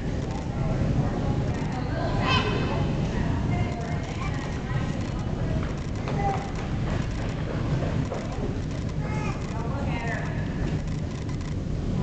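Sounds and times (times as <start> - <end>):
faint voices: 0.0 - 11.0
low background rumble: 0.0 - 12.0.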